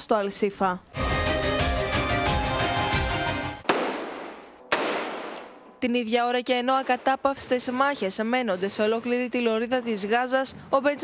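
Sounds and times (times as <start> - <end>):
rifle shot with echo: 3.6 - 5.6.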